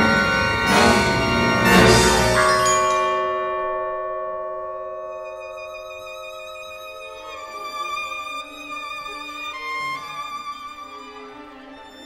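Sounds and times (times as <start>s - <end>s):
orchestral held chord: 0.0s - 10.0s.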